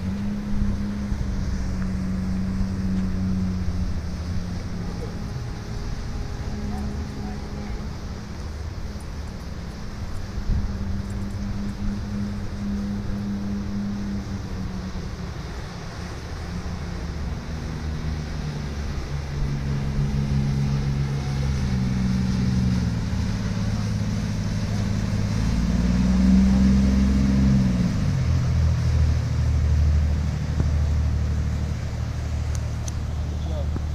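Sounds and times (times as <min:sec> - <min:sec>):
boat diesel engines running: 0:00.0 - 0:33.9
waves breaking: 0:00.0 - 0:33.9.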